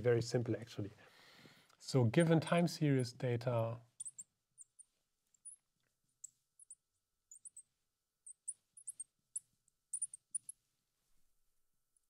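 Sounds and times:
marker pen squeaking on glass: 4.0s - 10.6s.

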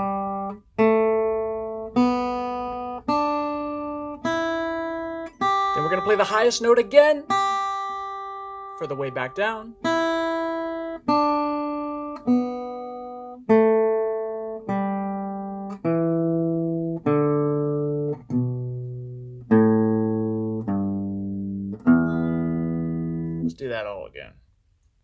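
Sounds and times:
acoustic guitar picking descending scale: 0.0s - 23.8s.

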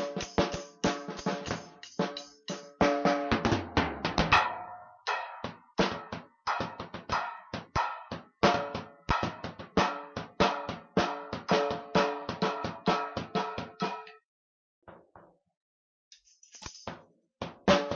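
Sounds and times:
drum kit groove: 0.0s - 14.1s, 16.2s - 17.9s.

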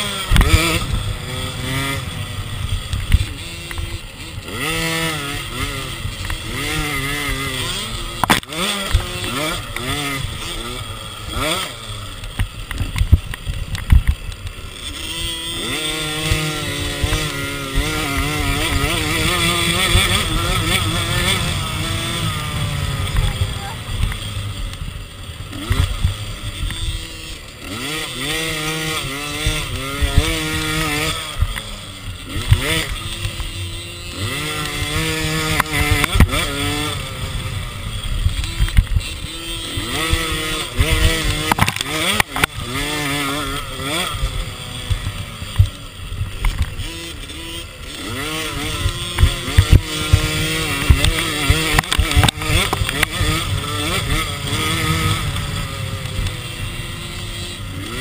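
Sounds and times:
two-stroke dirt bike engine revving: 0.0s - 58.0s.

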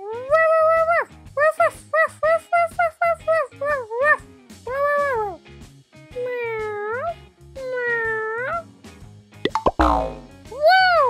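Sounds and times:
light background music: 0.0s - 11.0s
plop sound effect: 9.5s - 10.3s.

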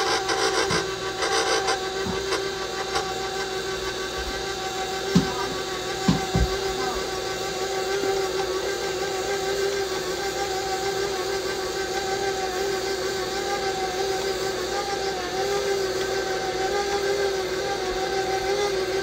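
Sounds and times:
stand mixer motor humming: 0.0s - 19.0s.

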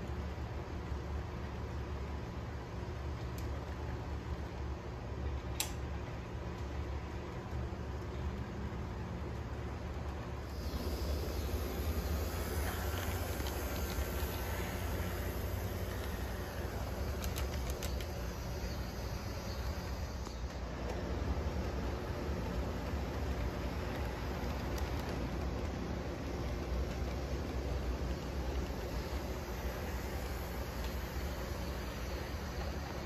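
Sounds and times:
model train rolling hum: 0.0s - 33.0s
sharp click: 5.5s - 5.8s.

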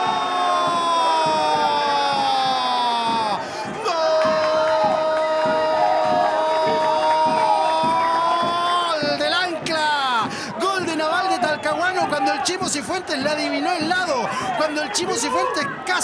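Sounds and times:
low beat: 0.0s - 15.9s
crowd cheering: 0.0s - 16.0s.

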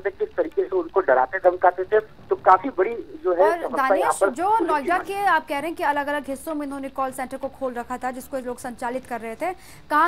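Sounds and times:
man speaking over telephone: 0.0s - 5.0s.

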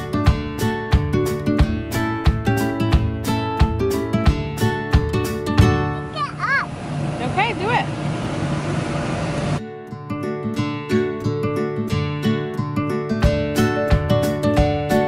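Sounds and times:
acoustic guitar music: 0.0s - 15.0s
children calling and squealing: 5.9s - 6.8s.

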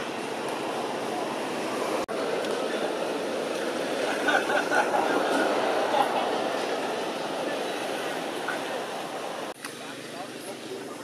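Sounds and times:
murmur of voices: 0.0s - 11.0s
steady background noise: 0.0s - 11.0s.

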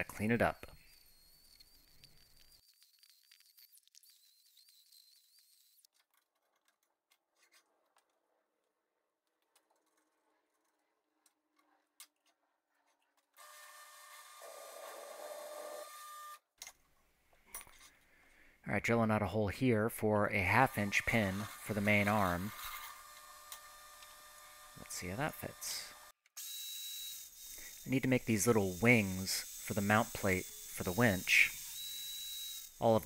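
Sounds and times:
drill press motor humming: 20.7s - 27.9s.

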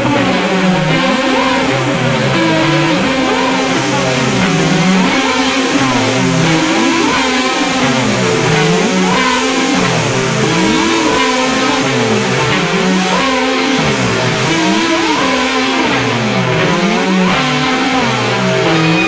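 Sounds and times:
band recording: 0.0s - 19.0s
electric guitar sliding notes: 0.0s - 19.0s.

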